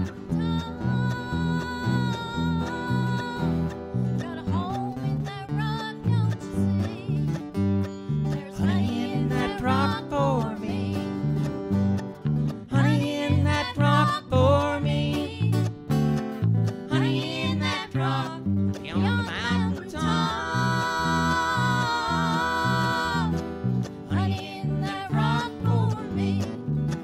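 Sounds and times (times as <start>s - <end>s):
mandolin picking: 0.0s - 27.0s
stepping bass line: 17.6s - 27.0s.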